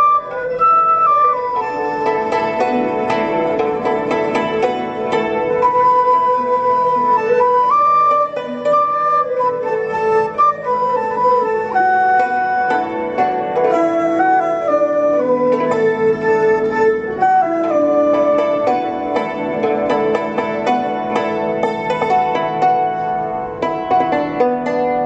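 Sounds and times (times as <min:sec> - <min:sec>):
flute melody: 0:00.0 - 0:21.8
bowed string melody: 0:00.0 - 0:25.0
plucked lutes: 0:00.0 - 0:25.0
struck hammered dulcimer: 0:00.0 - 0:25.0.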